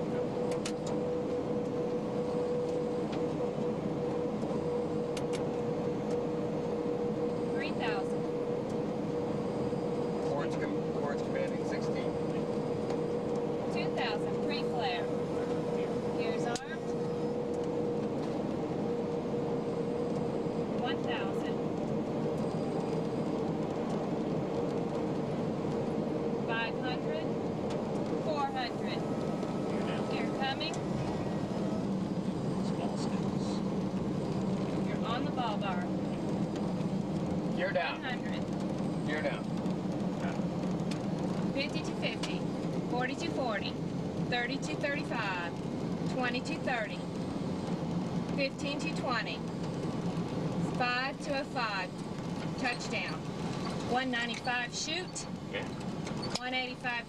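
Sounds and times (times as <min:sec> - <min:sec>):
cabin hum and rush: 0:00.0 - 0:57.0
low hum: 0:00.0 - 0:57.0.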